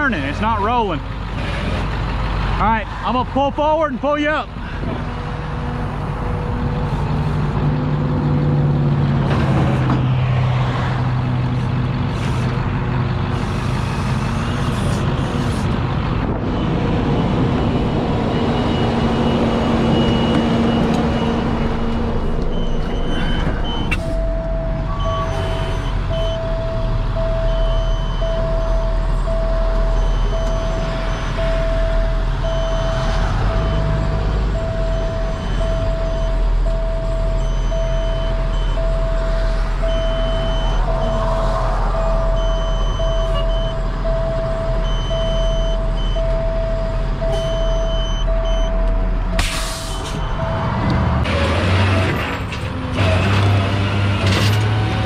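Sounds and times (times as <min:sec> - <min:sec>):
diesel engine idling: 0:00.0 - 0:51.8
electronic warning beeps: 0:22.5 - 0:50.9.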